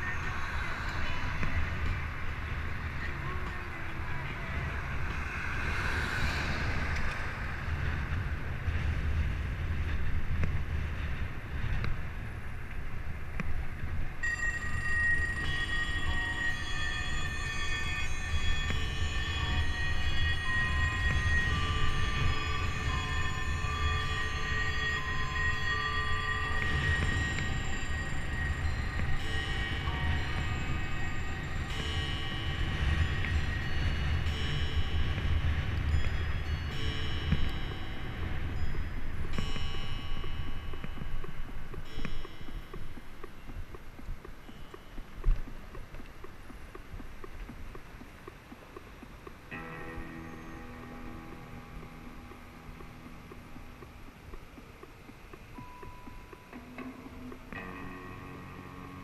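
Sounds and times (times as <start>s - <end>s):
steady high tones: 0.0s - 8.4s, 14.0s - 59.0s
wind rumbling on microphone: 0.0s - 59.0s.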